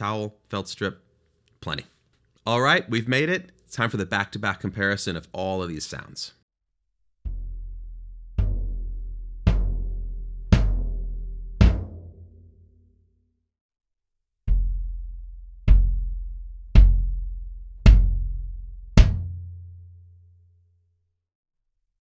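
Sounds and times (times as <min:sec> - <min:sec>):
muffled bass drum strikes: 0:07.2 - 0:12.4, 0:14.5 - 0:19.6
bass drum booming: 0:07.2 - 0:12.5, 0:14.5 - 0:19.6.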